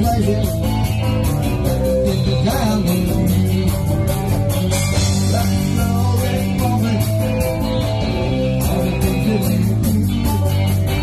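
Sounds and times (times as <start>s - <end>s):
bass guitar: 0.0s - 11.0s
drums and cymbals: 0.0s - 11.0s
strummed electric guitar: 0.0s - 11.0s.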